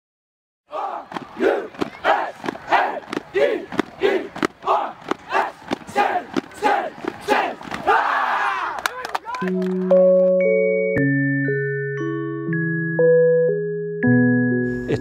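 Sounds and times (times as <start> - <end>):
players shouting rhythmic chant: 0.7 - 9.4
sharp hand claps: 8.7 - 10.0.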